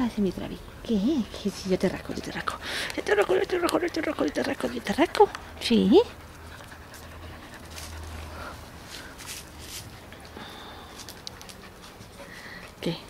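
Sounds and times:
dog panting: 1.4 - 13.0.

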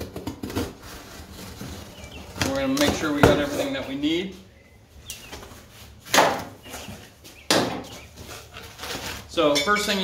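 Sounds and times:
tape tearing off cardboard: 0.0 - 2.6, 7.7 - 9.3.

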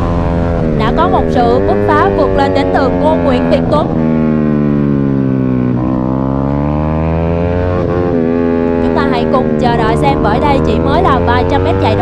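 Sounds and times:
racing motorcycle engine revving: 0.0 - 12.0.

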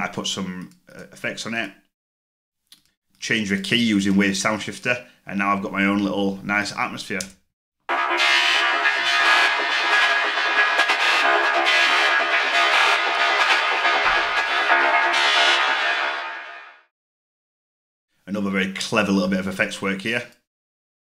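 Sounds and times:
looped trance music: 7.9 - 16.8.

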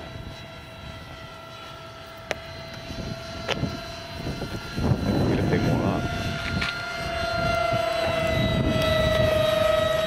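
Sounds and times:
electric ducted fans whining: 0.0 - 10.0.

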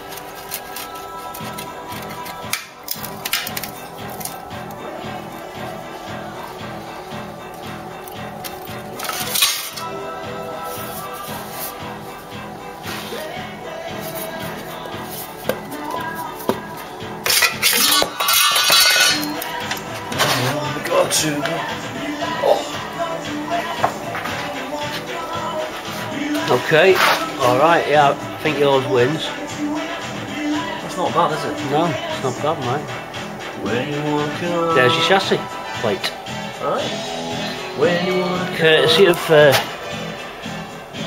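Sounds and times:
background music with steady beat: 0.0 - 41.0.

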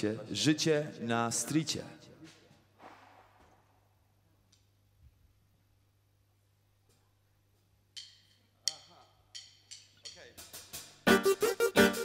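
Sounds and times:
drumstick count-in ticks: 8.0 - 10.9
band playing loud rhythmic song: 10.4 - 12.0.

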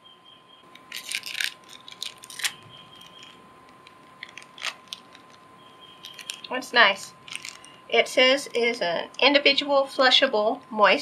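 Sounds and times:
plastic wrapper crinkling: 0.7 - 7.8.

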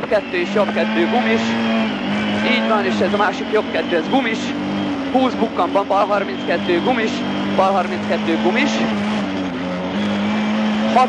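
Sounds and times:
car engine revving hard: 0.0 - 11.0.

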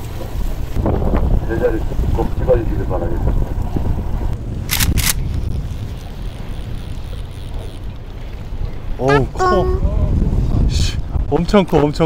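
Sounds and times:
wind buffeting microphone: 0.0 - 12.0
brief voice: 9.1 - 9.9.

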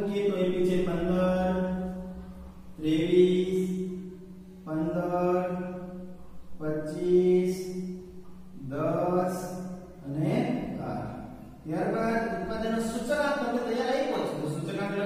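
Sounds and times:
man speaking sing-song: 4.6 - 5.9, 6.6 - 7.8, 8.6 - 15.0.

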